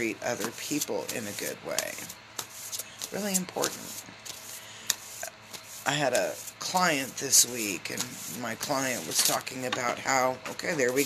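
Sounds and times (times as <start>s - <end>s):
cards being shuffled: 0.4s - 7.2s.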